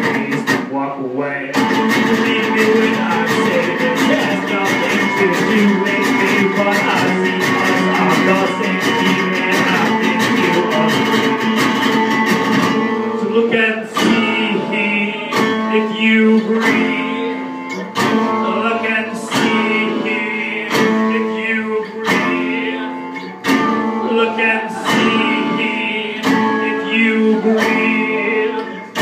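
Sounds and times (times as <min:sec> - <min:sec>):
acoustic guitar strumming: 0:00.0 - 0:29.0.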